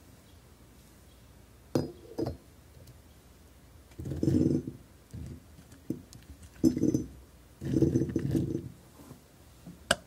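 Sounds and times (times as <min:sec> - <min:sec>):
funnel clinking in glass pitcher: 0:06.6 - 0:08.6.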